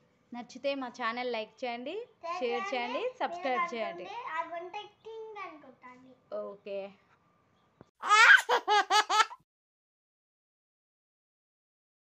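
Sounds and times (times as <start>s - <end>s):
young child laughing: 8.0s - 9.4s.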